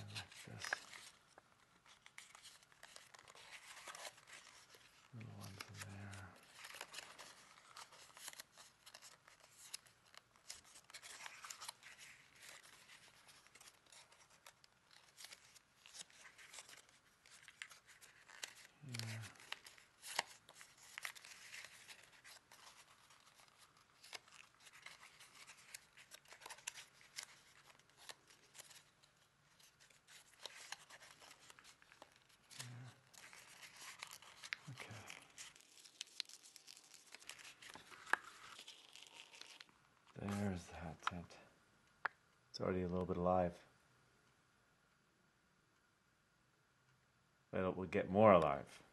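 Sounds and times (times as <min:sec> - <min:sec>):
thick paper crackling and rustling: 0:00.0 - 0:41.2.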